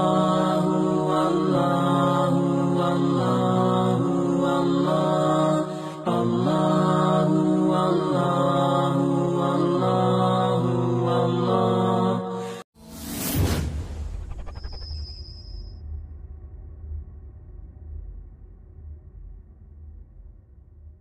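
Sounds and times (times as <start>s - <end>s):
chanted vocal melody: 0.0s - 12.7s.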